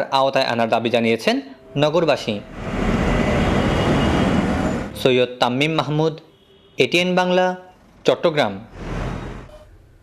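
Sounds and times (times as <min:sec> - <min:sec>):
road traffic: 0:01.4 - 0:10.0.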